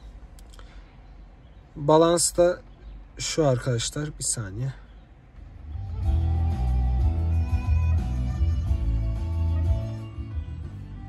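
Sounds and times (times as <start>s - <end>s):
music through car speakers: 5.4s - 11.0s.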